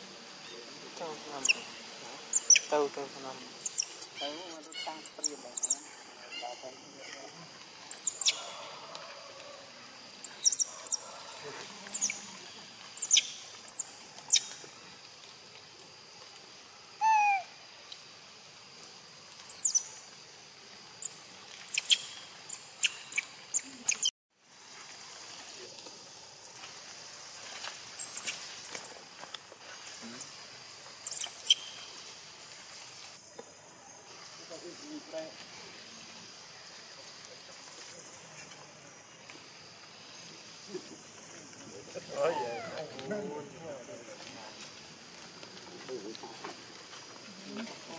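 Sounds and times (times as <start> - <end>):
baby monkey squeaking cries: 3.6 - 5.8, 17.0 - 17.5
lower falling monkey call: 3.6 - 14.7, 17.0 - 17.6, 42.0 - 43.1.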